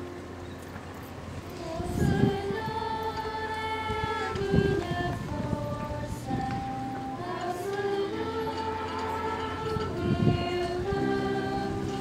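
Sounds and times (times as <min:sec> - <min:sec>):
faint voices: 0:00.0 - 0:12.0
held musical note: 0:00.0 - 0:12.0
low crowd rumble: 0:00.0 - 0:12.0.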